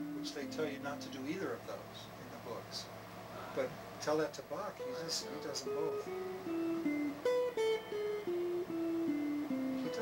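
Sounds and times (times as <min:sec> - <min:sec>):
electric guitar melody: 0:00.0 - 0:01.4, 0:04.8 - 0:10.0.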